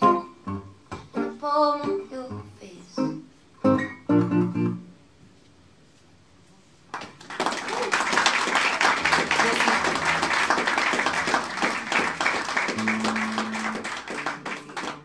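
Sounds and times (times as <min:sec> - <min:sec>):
low guitar notes: 0:00.0 - 0:04.9, 0:11.2 - 0:15.0
audience applause: 0:06.9 - 0:15.0.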